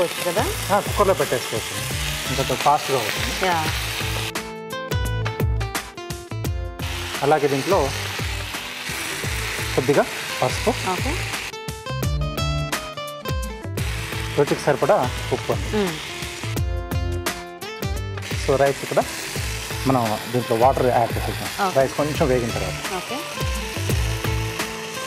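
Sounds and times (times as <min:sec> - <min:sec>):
food sizzling in a pan: 0:00.0 - 0:04.4, 0:06.8 - 0:11.6, 0:13.8 - 0:16.8, 0:18.2 - 0:25.0
background music: 0:00.0 - 0:25.0
person talking: 0:14.4 - 0:16.0.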